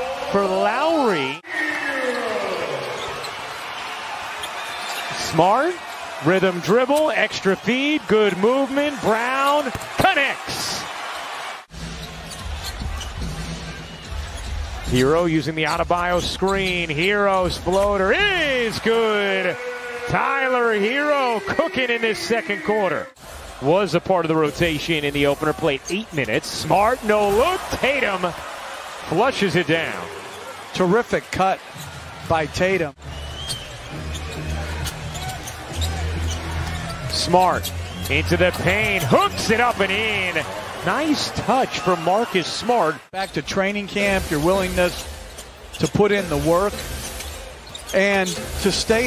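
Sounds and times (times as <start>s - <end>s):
arena crowd noise: 0.0s - 49.0s
low arena music: 11.7s - 29.7s, 32.2s - 42.6s, 43.3s - 49.0s.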